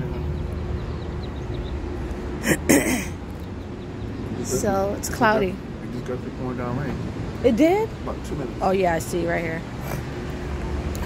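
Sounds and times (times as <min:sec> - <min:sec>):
low outdoor rumble: 0:00.0 - 0:11.0
woman's voice: 0:04.5 - 0:05.6, 0:07.4 - 0:07.9, 0:08.6 - 0:09.7.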